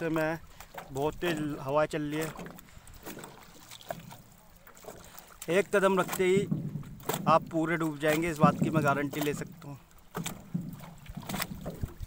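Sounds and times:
waves lapping against boat hull: 0.0s - 12.0s
sharp slaps of water: 2.1s - 12.0s
wind rumble on microphone: 10.5s - 12.0s.

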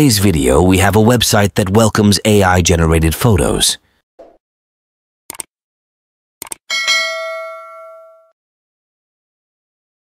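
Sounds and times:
notification bell ding: 6.7s - 8.4s.

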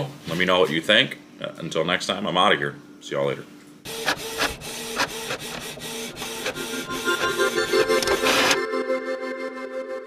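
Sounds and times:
printer carriage motor humming: 3.9s - 8.6s.

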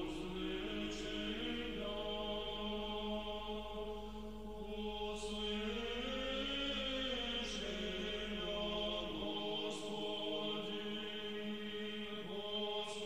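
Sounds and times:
church choir chanting: 0.0s - 13.0s.

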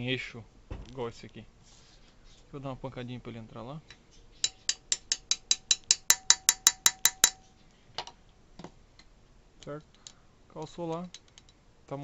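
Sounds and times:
hammer tapping metal: 4.4s - 7.5s.

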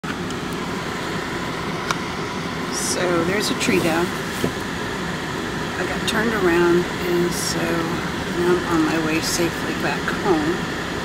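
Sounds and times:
car engine and tyres humming: 0.0s - 11.0s.

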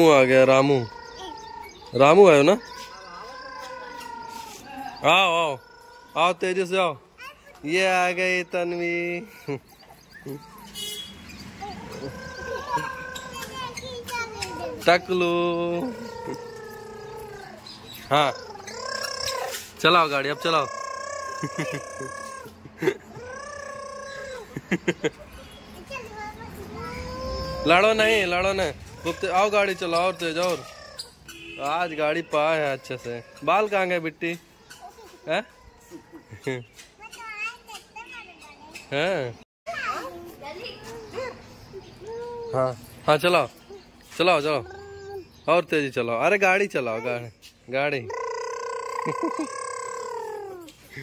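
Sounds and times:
young children babbling: 0.0s - 10.8s, 11.6s - 31.2s, 31.8s - 38.8s, 39.7s - 42.9s, 43.6s - 45.5s, 48.0s - 51.0s
child speaking: 7.1s - 7.7s, 11.6s - 14.9s, 25.6s - 27.7s, 34.8s - 36.2s, 37.0s - 38.9s, 39.7s - 42.6s
child making engine noise: 11.7s - 14.8s, 15.7s - 17.6s, 18.2s - 19.7s, 20.3s - 24.6s, 25.8s - 28.3s, 48.1s - 50.7s.

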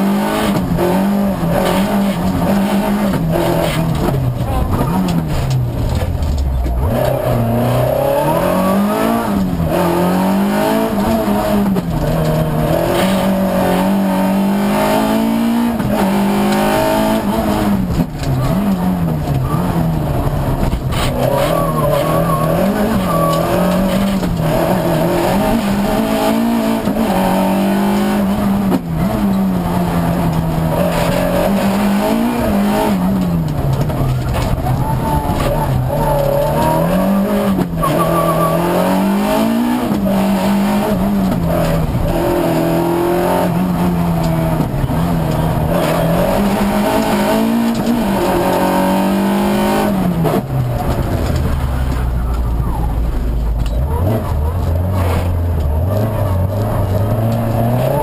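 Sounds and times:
rally car engine revving: 0.0s - 58.0s
tyre and road noise: 0.0s - 58.0s.

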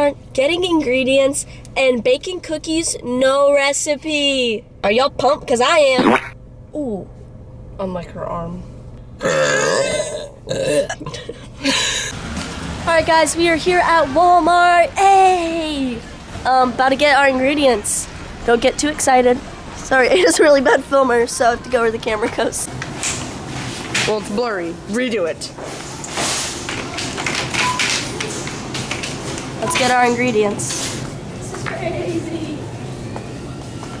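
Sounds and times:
store background noise: 12.8s - 34.0s
girls laughing: 20.1s - 21.0s.

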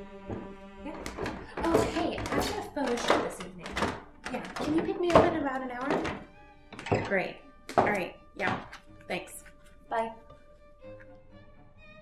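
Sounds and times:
soft music with held notes: 0.0s - 12.0s
woman speaking: 0.8s - 6.2s, 7.0s - 10.2s.

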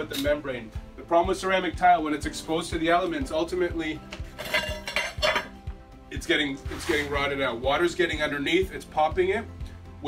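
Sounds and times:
background music with beat: 0.0s - 10.0s
hand tool clinking on tile: 4.4s - 5.5s.

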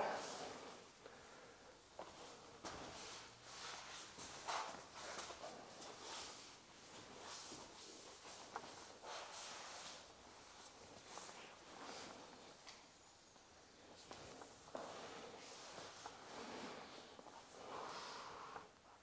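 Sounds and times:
shuffling on foam mat: 2.0s - 12.8s, 13.4s - 19.0s.

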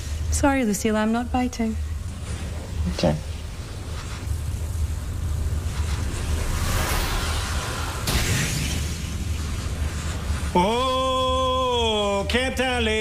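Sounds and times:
low rumble: 0.0s - 13.0s
rushing whoosh: 3.9s - 11.2s
sudden sharp burst: 5.6s - 13.0s.

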